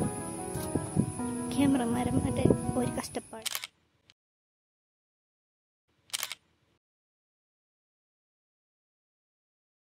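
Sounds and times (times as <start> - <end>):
camera shutter double click: 3.4 - 3.8, 6.1 - 6.4.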